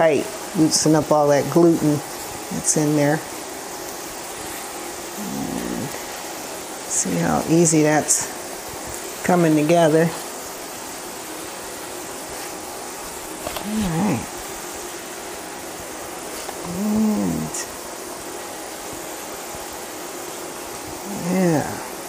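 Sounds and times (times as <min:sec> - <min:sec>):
steady hiss: 0:00.0 - 0:22.0.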